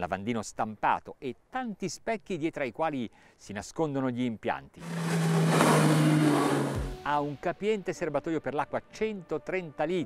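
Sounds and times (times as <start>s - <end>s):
outboard engines at speed: 4.8s - 6.9s.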